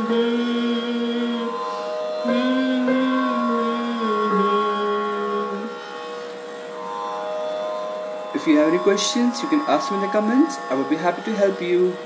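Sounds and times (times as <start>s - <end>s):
electronic keyboard chord: 0.0s - 6.4s.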